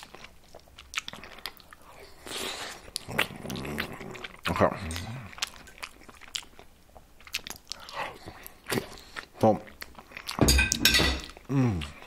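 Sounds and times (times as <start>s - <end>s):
person chewing: 0.0s - 12.0s.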